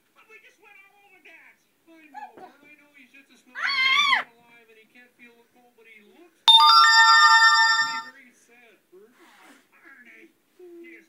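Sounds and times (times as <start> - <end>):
bright bell-like chime: 6.5 - 8.1.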